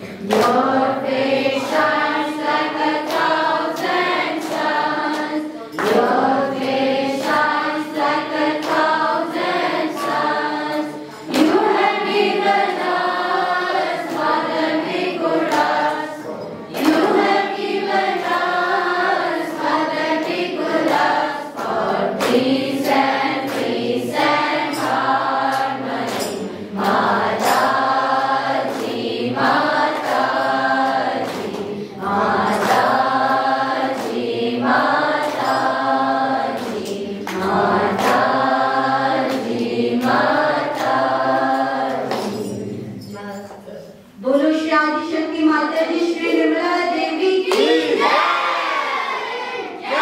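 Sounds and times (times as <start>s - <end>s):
group singing devotional song: 0.0s - 43.2s, 43.9s - 50.0s
sharp percussive beats: 0.0s - 44.2s.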